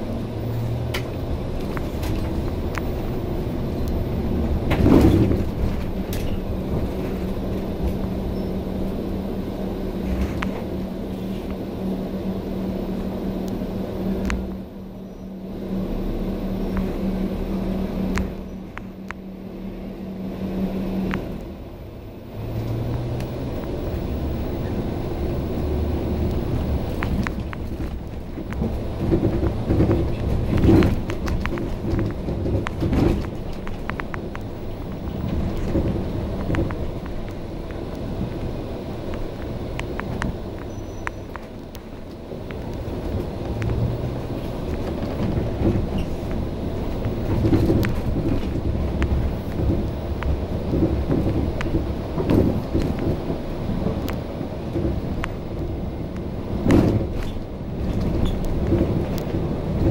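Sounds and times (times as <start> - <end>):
bus body rattling: 0.0 - 59.9
bus drivetrain humming: 0.0 - 59.9.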